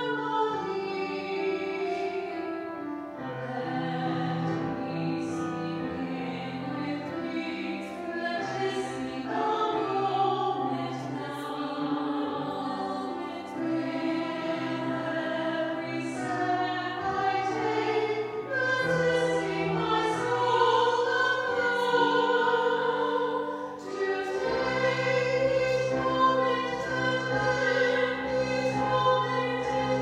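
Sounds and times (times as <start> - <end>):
choir singing a hymn: 0.0 - 30.0.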